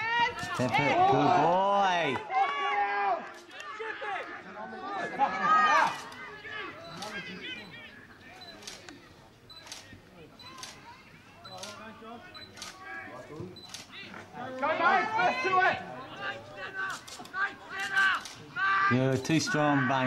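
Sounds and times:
people shouting: 0:00.0 - 0:08.0, 0:14.3 - 0:20.0
faint voices: 0:03.2 - 0:20.0.

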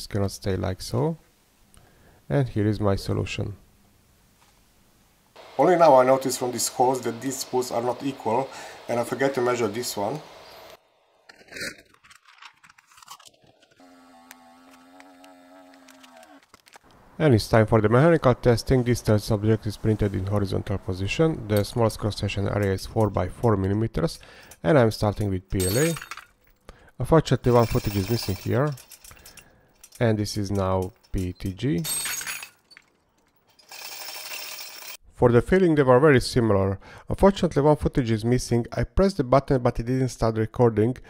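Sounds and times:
steady hiss: 0:04.2 - 0:10.8
small vacuum pump humming: 0:05.4 - 0:10.8, 0:13.8 - 0:16.4
plastic bag crinkling and clicking: 0:11.3 - 0:13.8, 0:15.8 - 0:17.0
metal hooks clinking: 0:25.6 - 0:26.7, 0:27.5 - 0:35.0.

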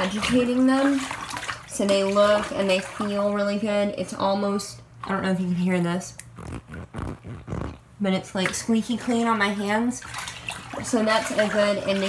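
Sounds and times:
wet hands squeaking: 0:06.2 - 0:07.9.

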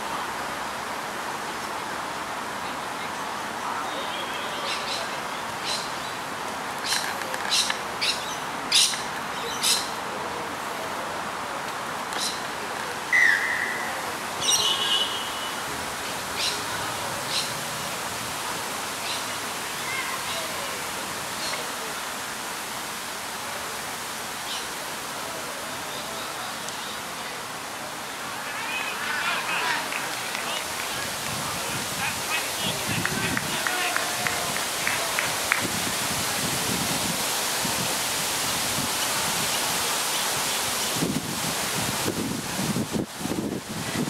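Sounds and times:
steady hiss: 0:00.0 - 0:44.0
whistle-like tones: 0:13.2 - 0:13.9.

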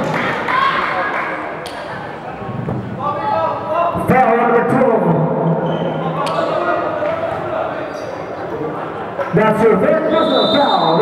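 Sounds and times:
echoing voices in a gym: 0:00.0 - 0:11.0.

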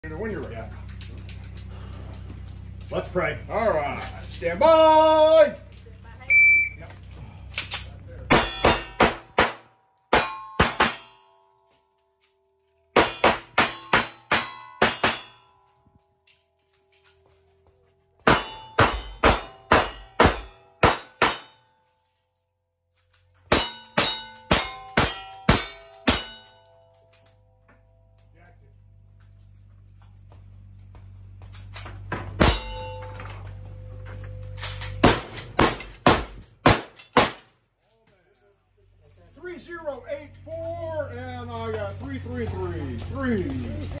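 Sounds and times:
shot timer beep: 0:06.3 - 0:06.8
steel targets ringing: 0:08.2 - 0:17.2, 0:18.2 - 0:22.0, 0:23.4 - 0:28.2, 0:31.6 - 0:37.6.

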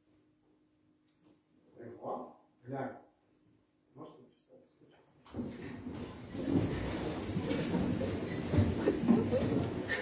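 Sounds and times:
low rumbling room noise: 0:00.0 - 0:10.0.

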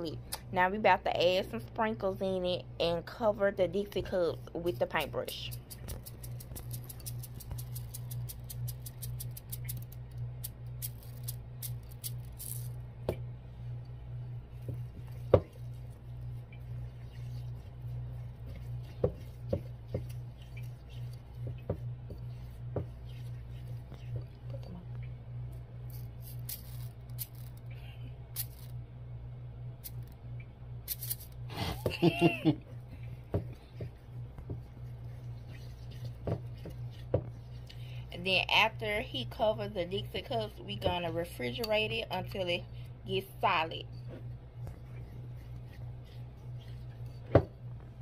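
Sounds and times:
steady low hum: 0:00.0 - 0:48.0
sprinkles pattering into bowl: 0:05.5 - 0:12.7.

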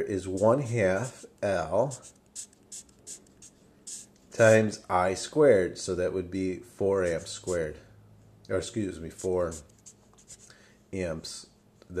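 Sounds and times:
marker writing on paper: 0:00.2 - 0:01.3, 0:01.9 - 0:04.1, 0:09.2 - 0:10.5.

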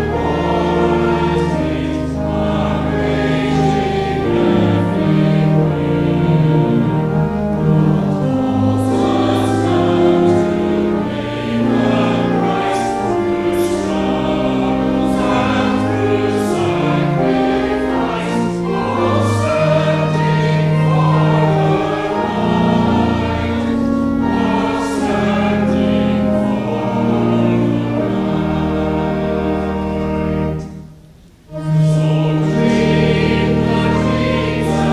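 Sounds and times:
mixed choir singing a hymn: 0:00.0 - 0:30.8, 0:31.5 - 0:34.9
low sustained instrumental accompaniment: 0:00.0 - 0:34.9.

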